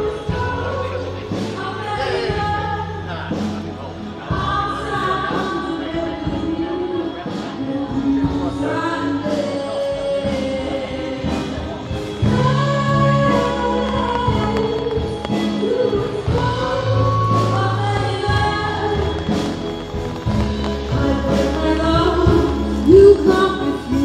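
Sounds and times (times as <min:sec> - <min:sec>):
bass and steady beat: 0:10.1 - 0:24.0.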